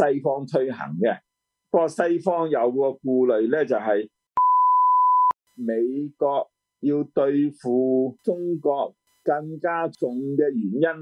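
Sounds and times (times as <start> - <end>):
man speaking: 0.0 - 1.2, 1.8 - 4.1, 5.6 - 11.0
electronic beep: 4.4 - 5.4.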